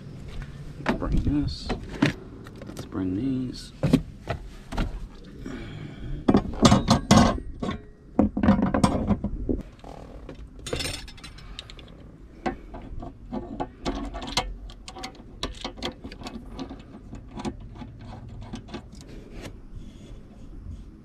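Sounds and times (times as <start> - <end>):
plastic parts clicking and rattling: 10.4 - 19.2.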